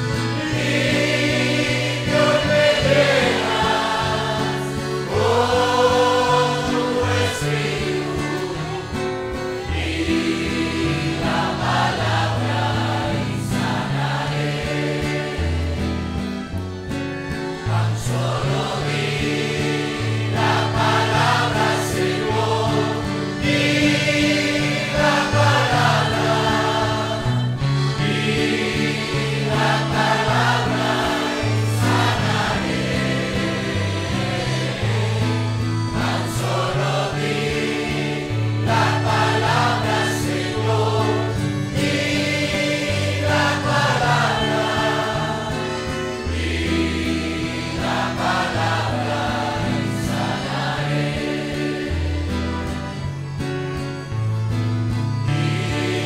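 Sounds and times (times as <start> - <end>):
congregation singing: 0.0 - 53.6, 55.0 - 56.0.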